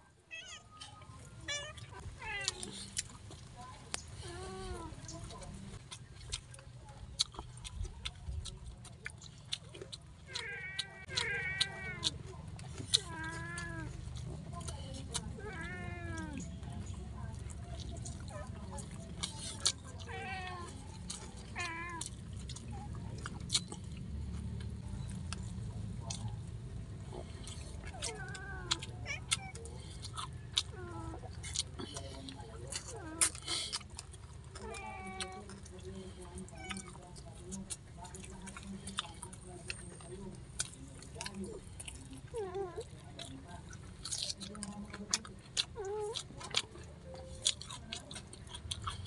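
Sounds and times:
cat meowing: 0.3 - 2.7, 10.3 - 12.2, 15.4 - 16.5, 27.8 - 29.6
chewing and lip-smacking clicks: 0.8 - 49.0.

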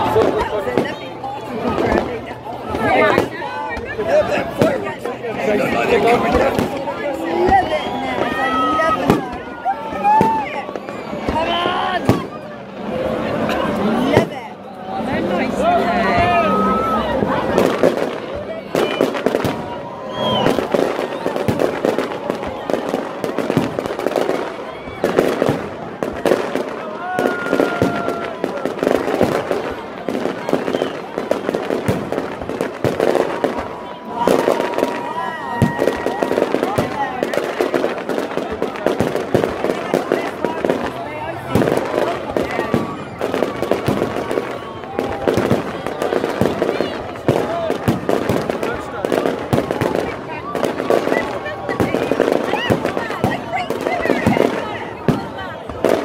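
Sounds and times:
crowd voices: 0.0 - 56.0
fireworks bangs and crackling: 0.0 - 56.0.

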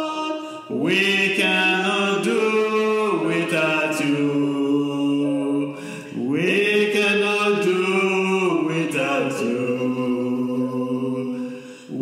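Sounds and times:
unaccompanied singing: 0.0 - 12.0.

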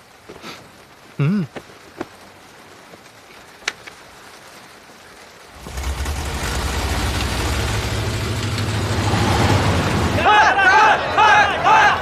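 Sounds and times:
light rain hiss: 0.0 - 12.0
car engine starting and rumbling: 5.5 - 11.2.

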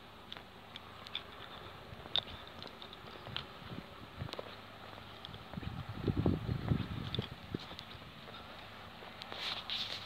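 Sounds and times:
footsteps on muddy dirt track: 0.3 - 10.0.

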